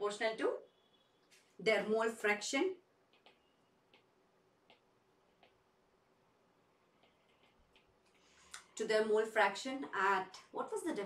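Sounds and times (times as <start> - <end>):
stylus tapping on tablet screen: 3.1 - 5.6, 6.9 - 8.3.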